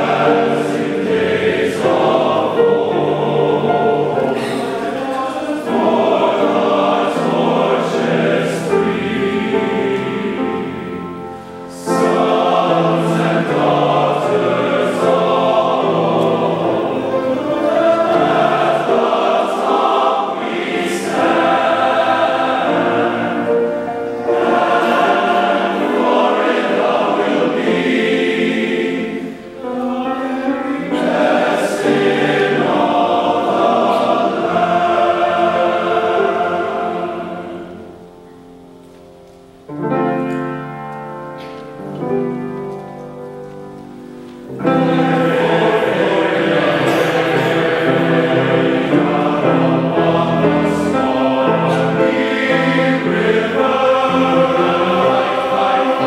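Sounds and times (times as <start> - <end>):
men's choir singing: 0.0 - 38.4, 44.0 - 56.0.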